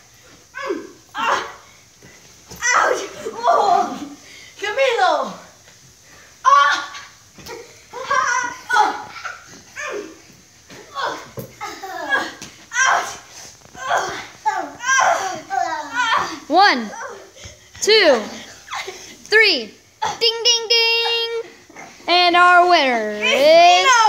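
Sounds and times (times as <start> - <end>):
children shouting and squealing: 2.6 - 4.2, 6.4 - 17.4.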